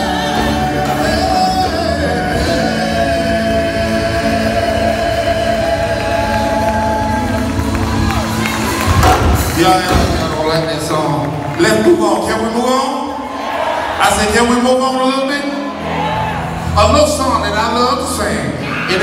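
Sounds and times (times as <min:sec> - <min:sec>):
male gospel group singing: 0:00.0 - 0:07.8
drums: 0:00.0 - 0:10.9.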